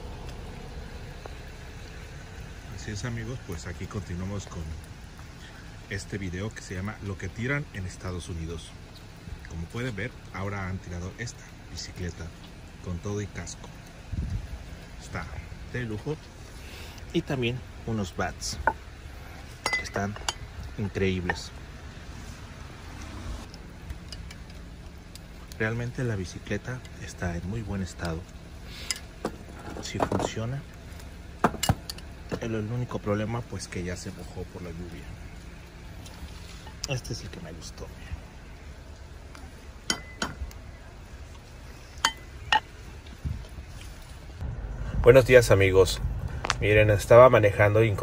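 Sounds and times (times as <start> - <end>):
low background rumble: 0.0 - 48.0
outdoor background noise: 0.0 - 48.0
sharp metallic clinks: 19.6 - 20.5, 39.9 - 40.5.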